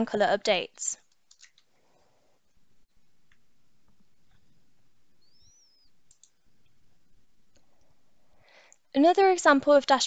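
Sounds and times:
computer mouse clicks: 0:01.0 - 0:01.7, 0:06.0 - 0:06.4
faint chirp-like tone: 0:04.3 - 0:07.4
soft breath: 0:07.6 - 0:08.9.

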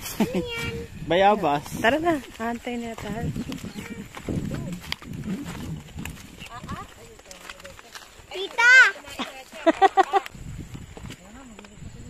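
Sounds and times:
people talking casually: 0:00.2 - 0:12.0.

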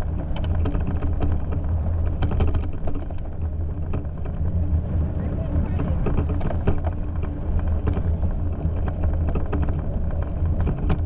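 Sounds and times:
bicycle vibration rumble: 0:00.0 - 0:11.0
bike clicks and rattles: 0:00.0 - 0:11.0.

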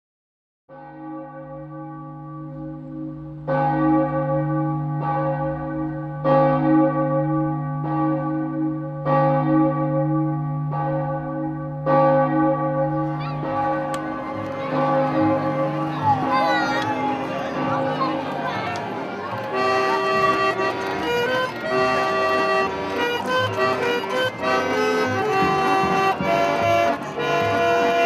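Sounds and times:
church bells ringing: 0:00.7 - 0:28.0.

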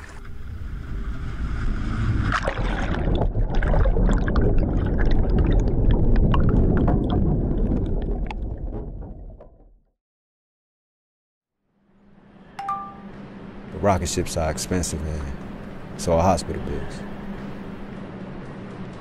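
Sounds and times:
underwater churning and bubbling: 0:00.0 - 0:09.9.

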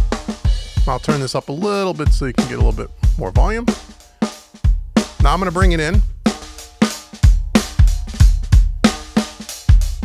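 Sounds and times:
snare drum: 0:00.0 - 0:10.0.

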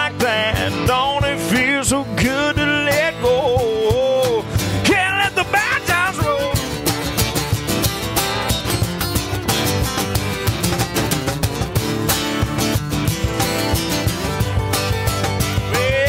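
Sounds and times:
wordless vocal: 0:00.0 - 0:06.8
acoustic guitars strumming: 0:00.0 - 0:16.0
cajon beat: 0:00.0 - 0:16.0.

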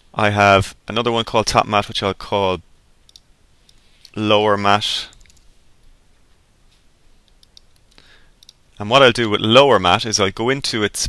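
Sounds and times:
man talking: 0:00.2 - 0:02.6, 0:04.1 - 0:05.2, 0:08.8 - 0:11.0
keyboard and mouse clicks: 0:05.1 - 0:05.5, 0:07.3 - 0:08.6.

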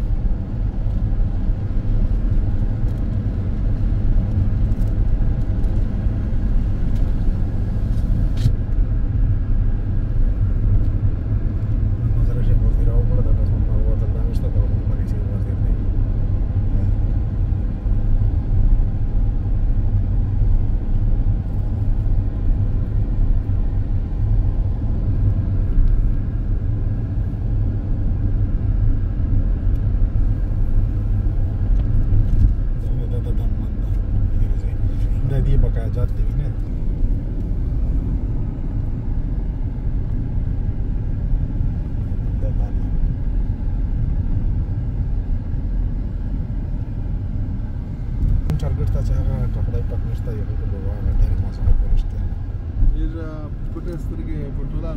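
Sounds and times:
car engine and tyres rumbling: 0:00.0 - 0:54.9.

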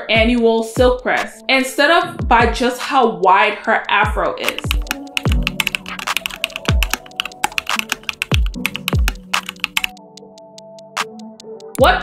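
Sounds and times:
background music with bass thump: 0:00.0 - 0:03.0, 0:03.8 - 0:10.0, 0:10.9 - 0:12.0.

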